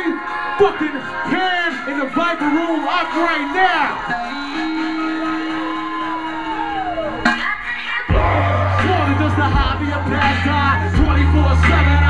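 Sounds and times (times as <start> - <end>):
crowd noise: 0.0 - 12.0
long descending whoop: 4.1 - 7.3.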